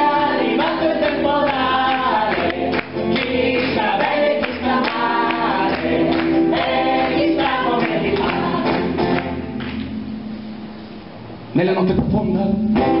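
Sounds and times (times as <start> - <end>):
female chorus singing: 0.0 - 9.4.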